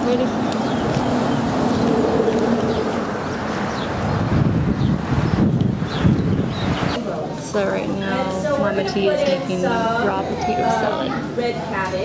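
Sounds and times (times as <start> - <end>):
wind buffeting microphone: 0.0 - 11.4.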